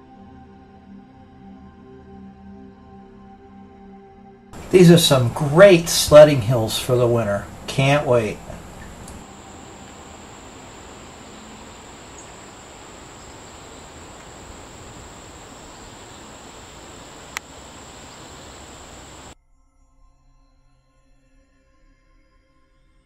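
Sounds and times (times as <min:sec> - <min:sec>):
high-pitched insect buzz: 0:08.8 - 0:19.4.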